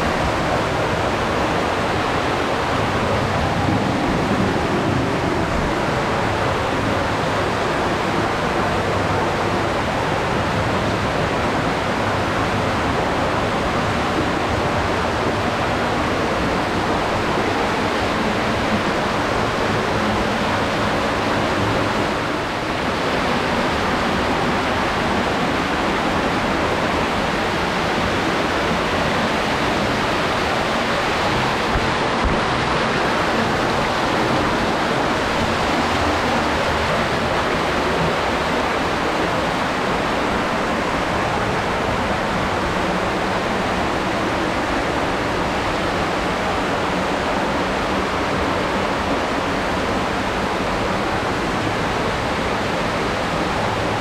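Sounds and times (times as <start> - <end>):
stream rushing over rocks: 0.0 - 54.0.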